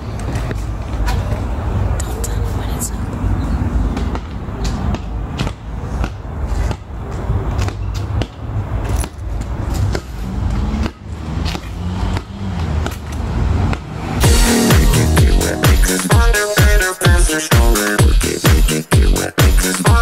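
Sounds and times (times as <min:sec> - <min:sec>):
ball thudding on pavement: 0:03.9 - 0:13.9
electronic dance music: 0:14.2 - 0:20.0.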